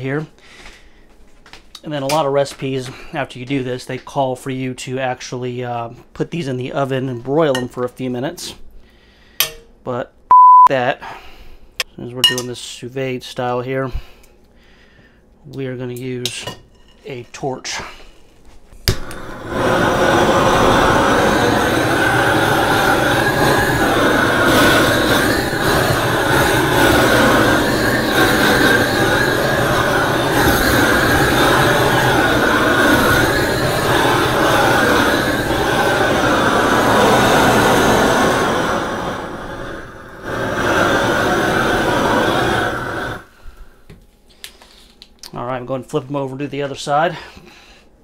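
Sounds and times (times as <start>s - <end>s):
propane torch flame roaring: 18.8s - 43.4s.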